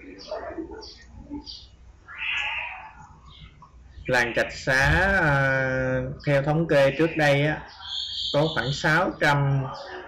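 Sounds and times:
high-pitched animal call: 0:02.1 - 0:03.5, 0:06.7 - 0:08.9.

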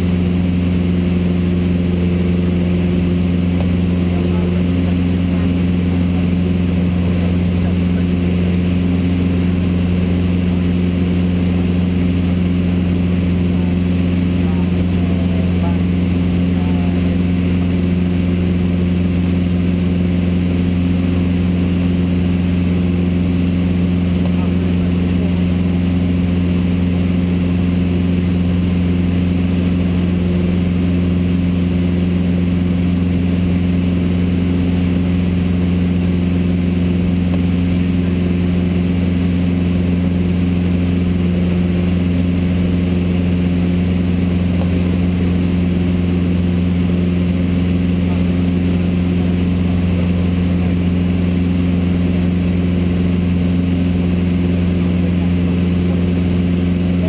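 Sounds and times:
light plane engine drone: 0:00.0 - 0:57.0.

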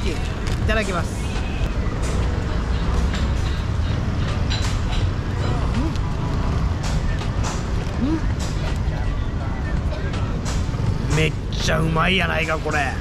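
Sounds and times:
crowd noise: 0:00.0 - 0:13.0
street traffic rumble: 0:00.0 - 0:13.0.

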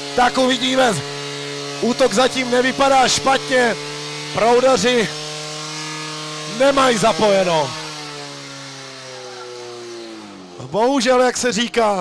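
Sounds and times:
pump engine running at high revs: 0:00.0 - 0:12.0.

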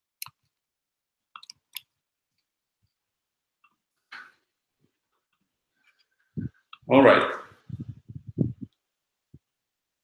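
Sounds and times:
man speaking: 0:06.8 - 0:07.6.

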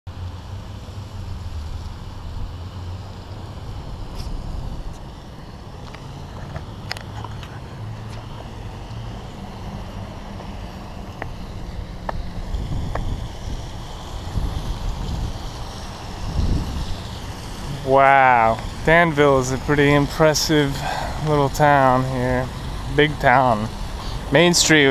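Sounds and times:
cart wheels rolling over pavement: 0:03.6 - 0:24.9.

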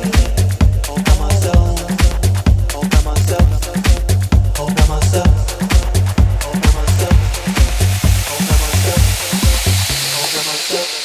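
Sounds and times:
kick drum and bass pulse: 0:00.0 - 0:10.7
white-noise sweep: 0:02.2 - 0:11.0.

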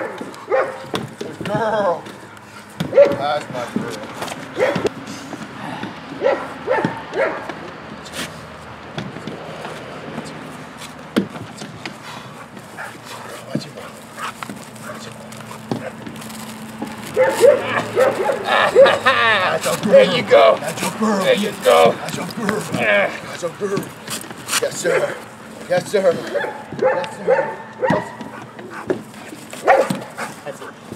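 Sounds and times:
dog barking and yipping: 0:00.0 - 0:01.0, 0:02.8 - 0:03.4, 0:04.5 - 0:04.9, 0:06.2 - 0:07.5, 0:12.7 - 0:16.0, 0:16.8 - 0:20.4, 0:24.8 - 0:25.4, 0:26.2 - 0:29.0, 0:29.6 - 0:30.4.

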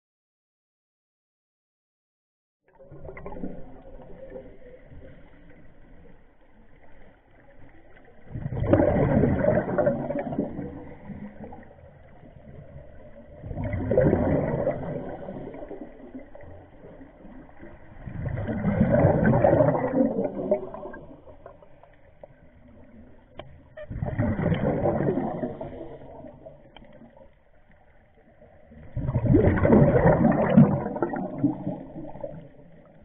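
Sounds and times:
underwater exhaust bubbles: 0:02.7 - 0:33.0.

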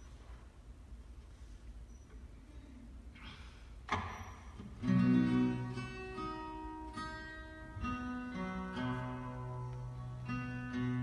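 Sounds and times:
acoustic guitar picking: 0:04.0 - 0:11.0.

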